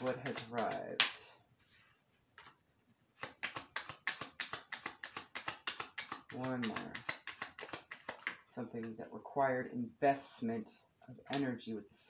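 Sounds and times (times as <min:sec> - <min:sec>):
cards being shuffled: 0:00.0 - 0:01.2, 0:02.4 - 0:02.6, 0:03.2 - 0:09.0.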